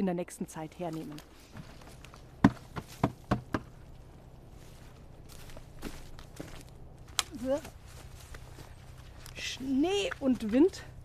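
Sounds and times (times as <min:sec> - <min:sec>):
dry twigs snapping: 0:05.3 - 0:09.4.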